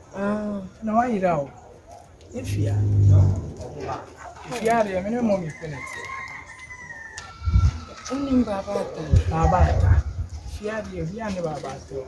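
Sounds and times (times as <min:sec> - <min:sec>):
low thud: 0:02.6 - 0:03.6
rooster crowing: 0:05.5 - 0:07.9.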